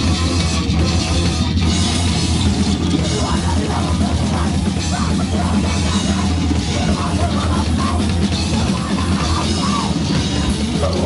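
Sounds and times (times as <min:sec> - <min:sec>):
distorted bass and guitar: 0:00.0 - 0:11.0
pounding drum kit: 0:00.0 - 0:11.0.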